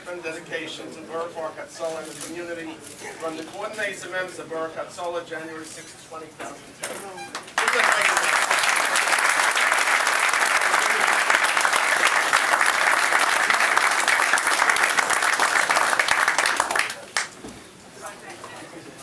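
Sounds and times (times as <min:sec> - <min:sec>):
crowd applauding: 0:07.4 - 0:17.4.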